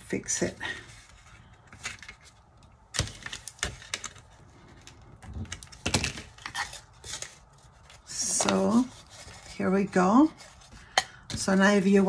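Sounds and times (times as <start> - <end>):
cardboard and frame pieces knocking: 2.9 - 4.2, 5.2 - 7.2.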